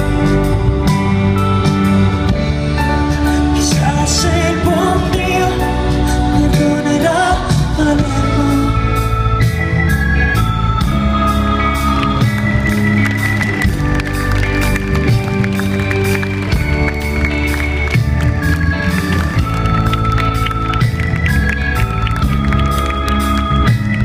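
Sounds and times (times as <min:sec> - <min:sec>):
live rock band instrumental: 0:00.0 - 0:24.0.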